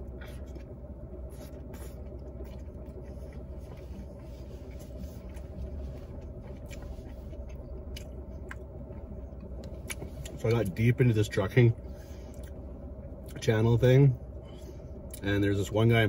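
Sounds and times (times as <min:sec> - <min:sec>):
man chewing food: 0:00.0 - 0:10.8, 0:12.1 - 0:13.4
low rumble inside car: 0:00.0 - 0:16.0.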